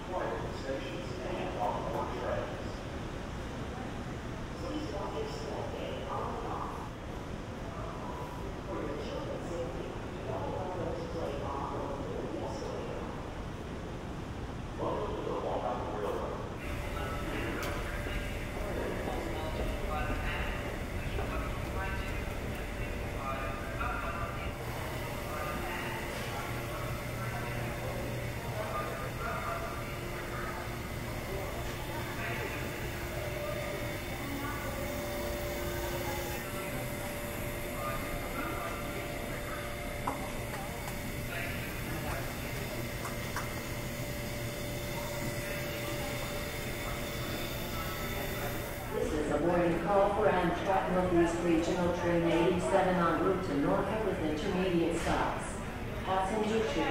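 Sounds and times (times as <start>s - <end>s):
distant indistinct voices: 0.0s - 56.9s
low steady hum: 0.0s - 56.9s.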